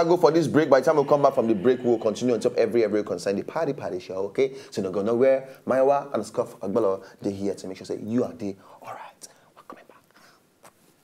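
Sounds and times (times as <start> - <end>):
soft hiss-like clicks: 5.4 - 5.7, 8.7 - 11.0
person whispering: 8.6 - 10.3.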